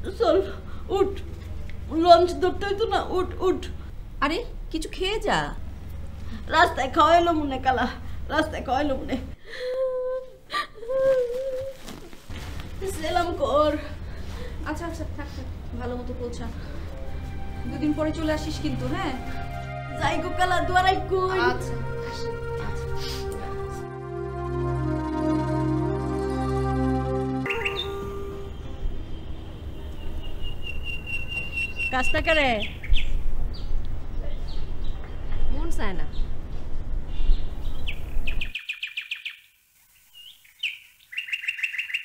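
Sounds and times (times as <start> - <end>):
low rumbling background noise: 0.0 - 38.5
woman crying wails: 9.5 - 11.8
background music: 12.7 - 31.1
birds chirping: 27.4 - 36.4, 37.0 - 42.0.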